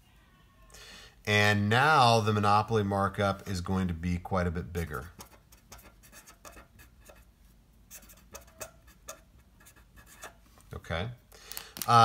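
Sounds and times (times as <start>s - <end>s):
marker scratching on paper: 5.1s - 7.3s, 7.9s - 10.5s.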